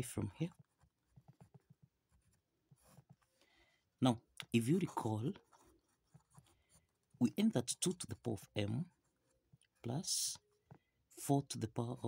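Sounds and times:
ballpoint pen scratching on paper: 0:00.0 - 0:03.4, 0:04.7 - 0:09.9.

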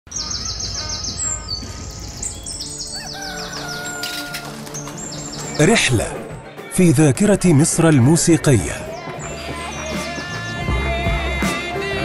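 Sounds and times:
birds chirping: 0:00.1 - 0:11.8.

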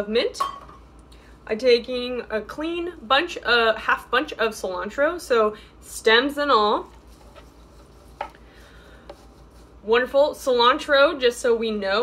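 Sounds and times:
low kitchen room noise: 0:00.0 - 0:12.0.

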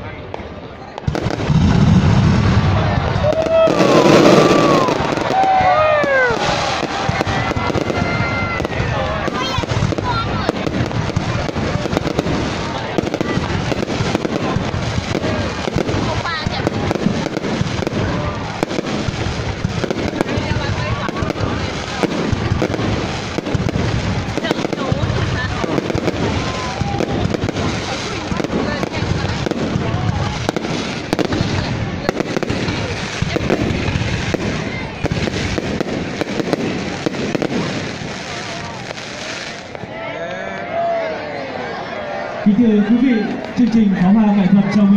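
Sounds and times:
firework crackling and popping: 0:00.2 - 0:40.0.

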